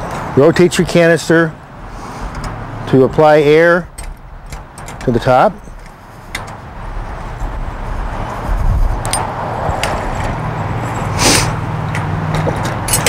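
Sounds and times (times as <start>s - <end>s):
engine humming: 0.0s - 13.0s.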